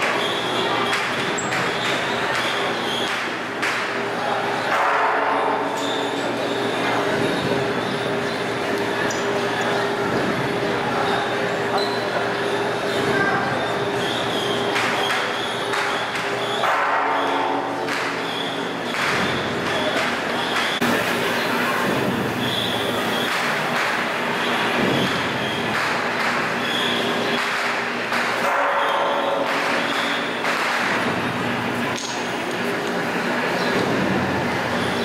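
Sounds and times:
crowd noise: 0:00.0 - 0:35.0
steady ringing tones: 0:26.5 - 0:33.6.

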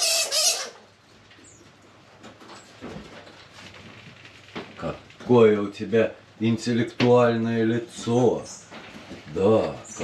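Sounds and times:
monkey giving harsh call: 0:00.0 - 0:00.8.

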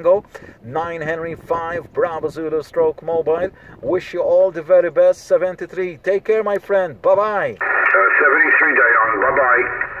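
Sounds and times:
radio band hiss: 0:07.6 - 0:10.0
tinny radio voice: 0:07.6 - 0:10.0.

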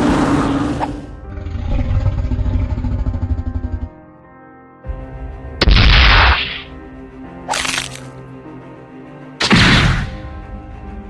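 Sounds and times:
fluttering creature rumble: 0:00.0 - 0:04.0
background music: 0:00.0 - 0:11.0.

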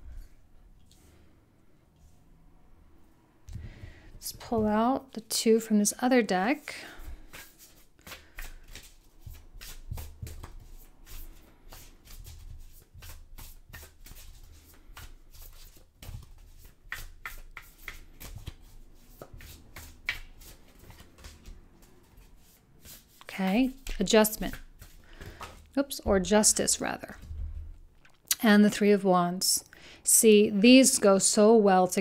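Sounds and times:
cards being shuffled: 0:07.0 - 0:27.3.

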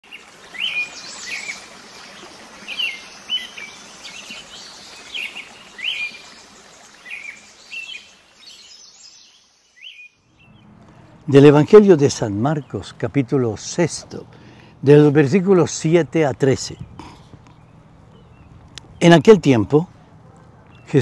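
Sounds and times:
steady outdoor hiss: 0:00.0 - 0:21.0
small birds chirping: 0:00.1 - 0:14.7, 0:16.3 - 0:21.0.

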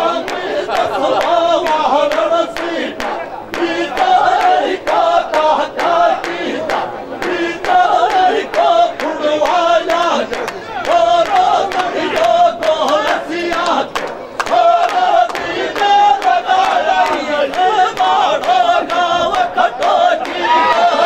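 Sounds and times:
men singing loudly together: 0:00.0 - 0:21.0.

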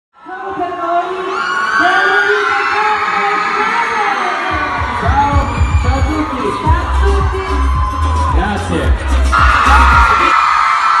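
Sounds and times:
crowd screaming and cheering: 0:00.2 - 0:11.0
pop music bass beat: 0:04.5 - 0:10.4.

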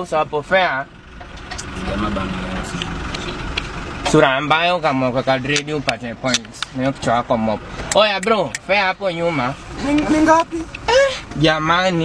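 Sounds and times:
bus engine and road rumble: 0:00.0 - 0:12.0
man talking: 0:01.6 - 0:02.9.

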